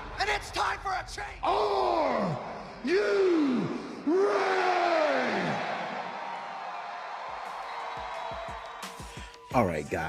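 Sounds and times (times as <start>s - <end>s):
man shouting long echoing calls: 1.4s - 5.6s.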